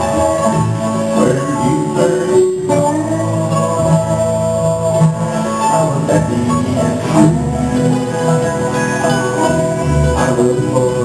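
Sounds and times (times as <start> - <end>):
bluegrass band playing: 0.0 - 11.0.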